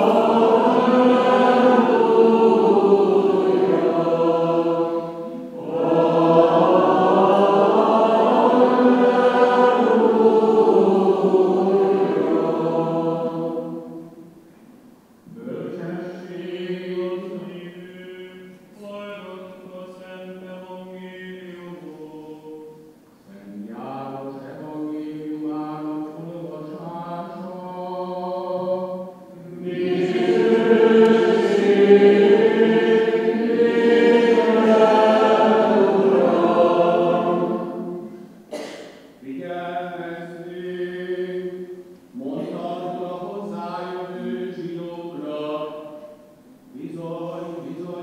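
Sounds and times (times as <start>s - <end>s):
choir singing a response: 0.0s - 14.3s, 15.3s - 22.6s, 23.7s - 48.0s
solo voice chanting: 0.0s - 48.0s.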